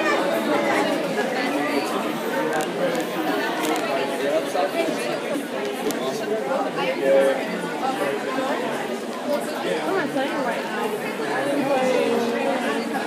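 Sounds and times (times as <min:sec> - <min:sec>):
indistinct chatter of many voices: 0:00.0 - 0:13.0.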